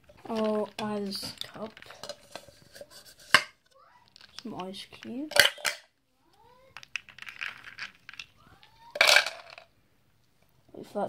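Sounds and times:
ice cubes rattling into a bowl: 0.3s - 2.5s, 6.8s - 9.7s.

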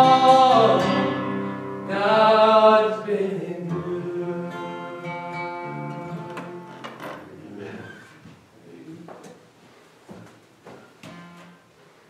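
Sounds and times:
acoustic guitar chords: 0.0s - 7.4s, 11.0s - 11.7s.

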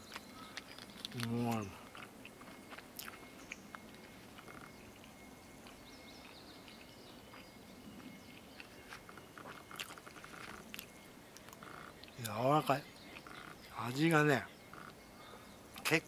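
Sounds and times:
soft chewing: 0.0s - 14.0s
faint bird chirps: 0.0s - 16.0s.

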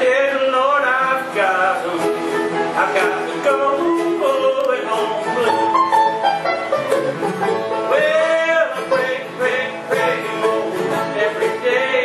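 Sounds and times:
bluegrass band playing blues: 0.0s - 12.0s.

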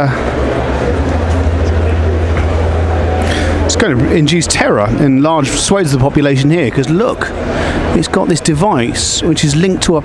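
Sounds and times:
low drone: 0.0s - 5.0s
crowd chatter: 0.0s - 10.0s.

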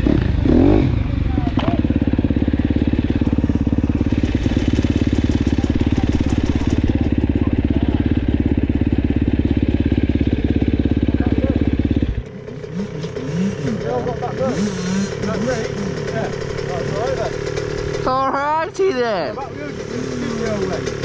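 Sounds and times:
dirt bike engine idling: 0.0s - 21.0s.

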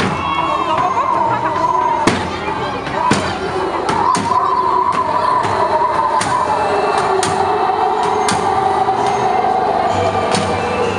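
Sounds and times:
crowd voices: 0.0s - 10.9s
parade music: 0.0s - 10.9s.

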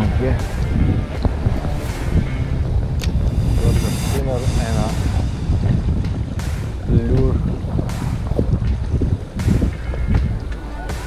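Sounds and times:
man talking: 0.0s - 0.5s, 3.4s - 5.4s, 6.8s - 7.5s
shallow river rushing: 0.0s - 11.0s
wind buffeting microphone: 0.0s - 11.0s.

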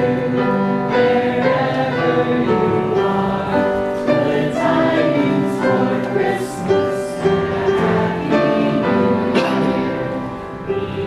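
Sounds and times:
audience singing together: 0.0s - 11.0s
piano accompaniment: 0.0s - 11.0s.

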